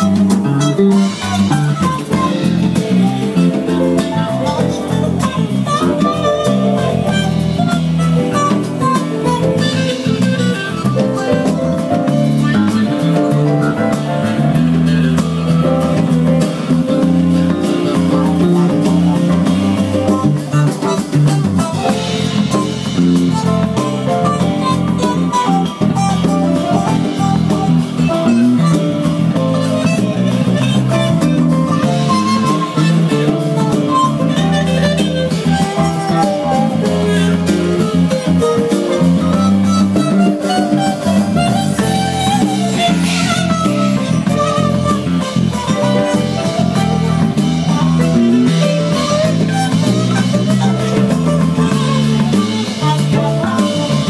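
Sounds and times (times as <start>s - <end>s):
electric guitar: 0.0s - 54.0s
live band playing: 0.0s - 54.0s.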